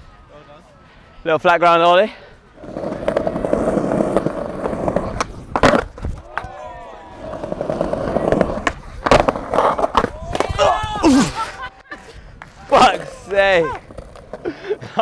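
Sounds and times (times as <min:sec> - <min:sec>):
skateboard wheels rolling on paving: 0:02.5 - 0:11.6, 0:12.4 - 0:15.0
skateboard clack: 0:02.6 - 0:10.7, 0:12.4 - 0:14.5.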